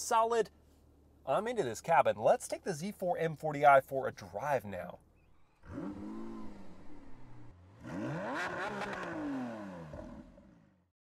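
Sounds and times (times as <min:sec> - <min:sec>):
car engine revving: 0:05.3 - 0:10.8.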